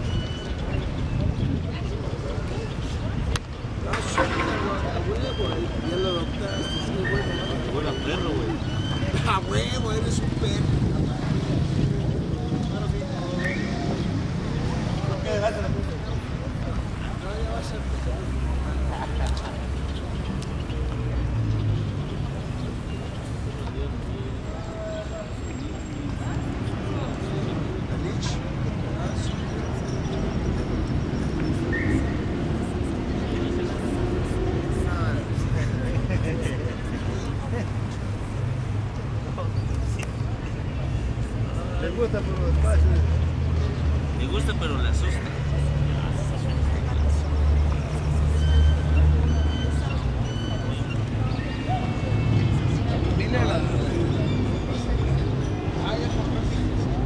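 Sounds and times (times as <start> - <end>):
low rumble of traffic or wind: 0.0 - 57.0
outdoor street noise: 0.0 - 57.0.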